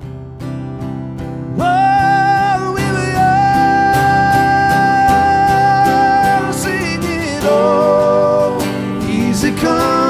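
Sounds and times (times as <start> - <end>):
acoustic guitars strummed: 0.0 - 10.0.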